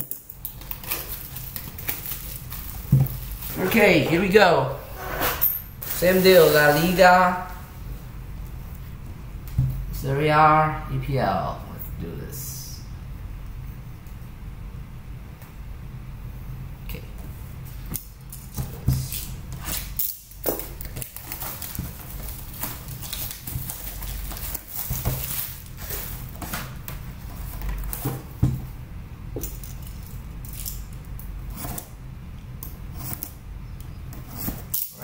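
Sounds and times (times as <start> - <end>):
plastic wrap crinkling: 0.0 - 4.3, 19.0 - 28.4
low steady hum: 0.0 - 35.0.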